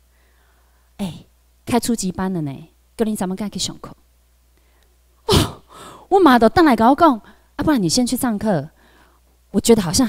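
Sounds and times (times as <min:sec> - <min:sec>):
room hum: 0:00.0 - 0:10.0
woman's breathy vocal burst: 0:05.3 - 0:06.1.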